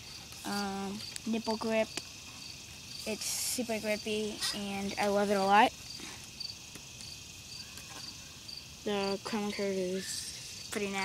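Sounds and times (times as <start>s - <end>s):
cricket chirping: 0.0s - 11.0s
faint outdoor background noise: 0.0s - 11.0s.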